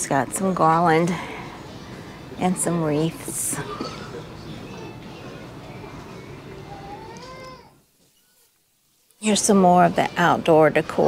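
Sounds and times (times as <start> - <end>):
faint store background: 0.0 - 11.0.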